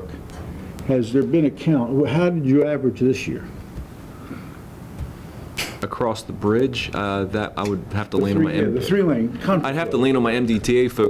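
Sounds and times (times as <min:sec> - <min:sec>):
man drawing breath: 0:04.0 - 0:05.6
man speaking: 0:05.8 - 0:11.0.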